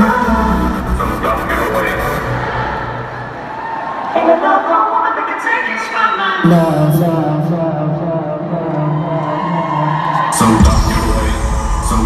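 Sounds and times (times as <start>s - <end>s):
heavy bass and drums: 10.6s - 12.0s.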